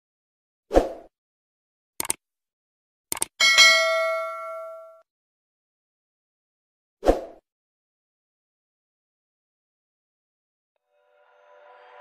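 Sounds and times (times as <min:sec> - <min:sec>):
quick clicks: 0:02.0 - 0:02.2, 0:03.1 - 0:03.4
notification bell chime: 0:03.4 - 0:05.0.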